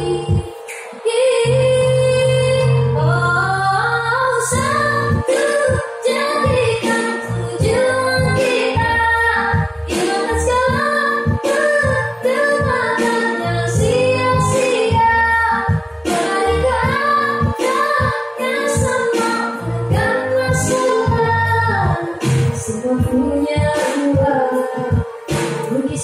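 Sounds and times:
girl singing pop ballad: 0.0 - 26.0
instrumental backing track: 0.0 - 26.0.

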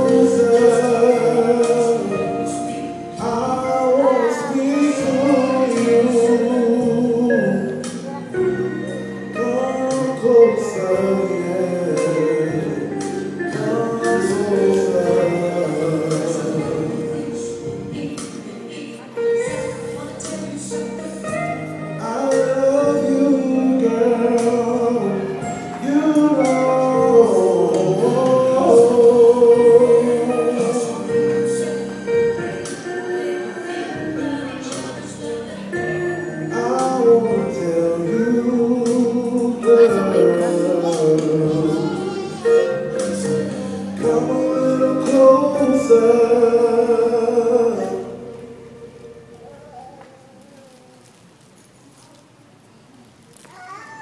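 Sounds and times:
man singing into microphone: 0.0 - 17.7, 20.2 - 49.7
instrumental backing: 0.0 - 51.5
high-pitched voice: 39.6 - 43.1, 53.4 - 54.0.

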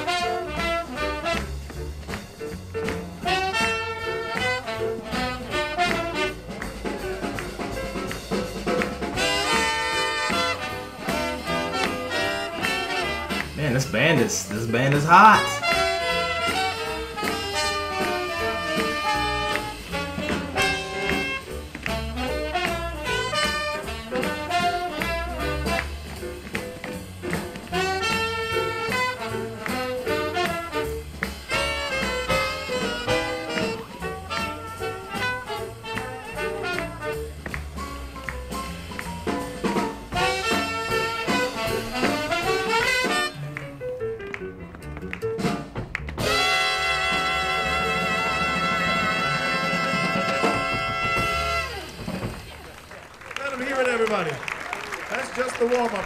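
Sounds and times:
swing jazz band playing: 0.0 - 56.0
cheering and applause: 48.2 - 56.0.

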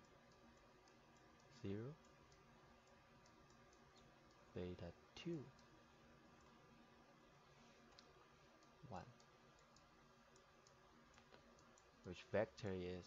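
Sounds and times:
stylus tapping tablet: 0.0 - 4.5, 7.9 - 12.0
person speaking numbers: 1.6 - 2.0, 4.6 - 5.6, 8.8 - 9.2.

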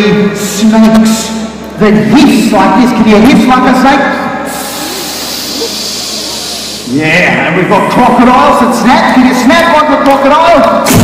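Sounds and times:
audience hissing: 4.5 - 6.9.

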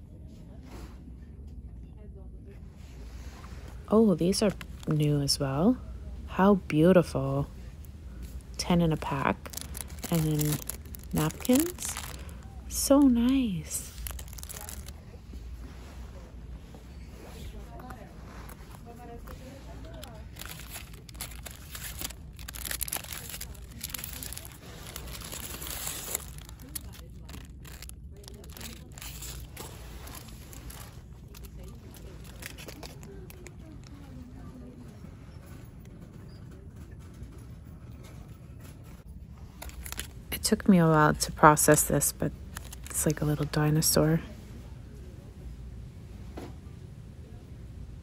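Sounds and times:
low steady hum: 0.0 - 48.0
plastic packaging crinkling: 8.2 - 15.4, 17.8 - 34.2, 39.4 - 43.9
faint indistinct voices: 13.8 - 39.3.

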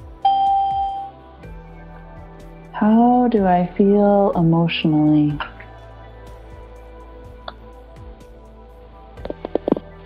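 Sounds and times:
soft background music: 0.0 - 10.0
doorbell chime: 0.2 - 1.2.

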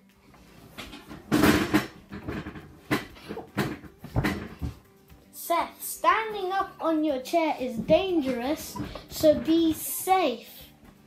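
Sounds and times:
wooden chair and table knocks: 0.8 - 4.9.

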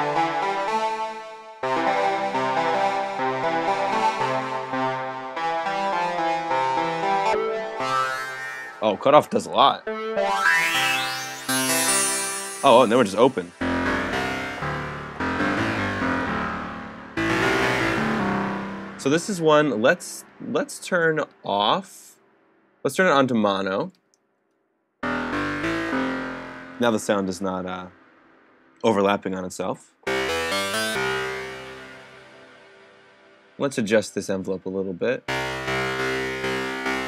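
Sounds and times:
dissonant synth guitar chords: 1.6 - 20.6, 25.0 - 28.8, 30.0 - 33.6, 35.3 - 37.0
plucked guitar-like synth tone: 10.2 - 19.4, 25.0 - 27.4.

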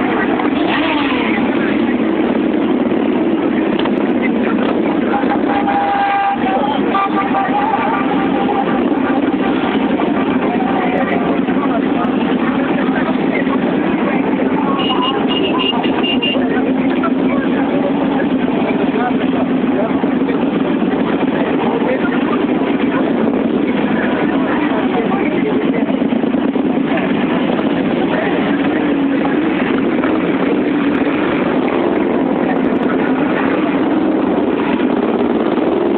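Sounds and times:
crowd voices: 0.0 - 35.9
motorcycle engines idling: 0.0 - 35.9.

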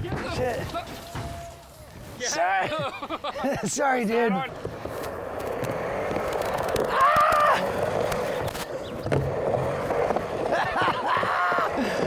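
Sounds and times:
skateboard wheels rolling on ramp: 0.0 - 12.0.

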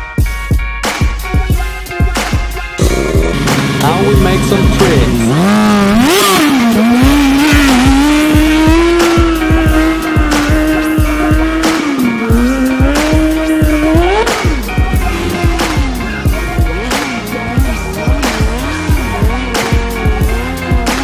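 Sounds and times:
music with steady beat: 0.0 - 21.0
motorcycle engine revving: 1.1 - 21.0.

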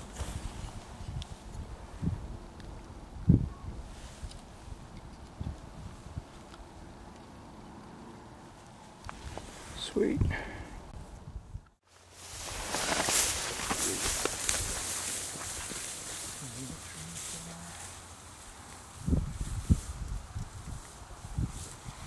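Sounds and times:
footsteps through dry grass: 0.0 - 1.6, 11.8 - 22.0.

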